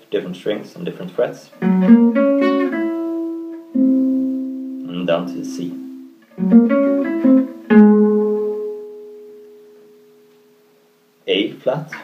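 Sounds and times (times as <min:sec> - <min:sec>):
acoustic guitar picked notes: 0:01.6 - 0:11.0.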